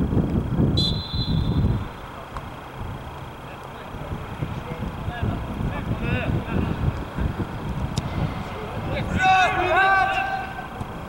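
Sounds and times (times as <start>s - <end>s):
wind buffeting microphone: 0.0s - 2.0s, 4.0s - 11.0s.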